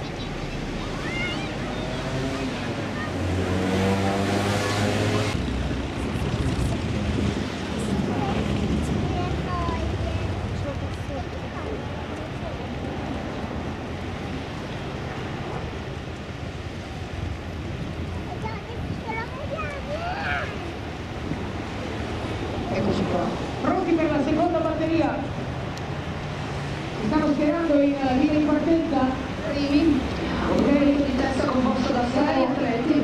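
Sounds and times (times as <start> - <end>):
indistinct voices: 0.0 - 13.1, 27.0 - 33.0
motorboat engine hum: 0.0 - 18.8
wind on microphone: 0.0 - 24.4
sea ambience: 0.0 - 33.0.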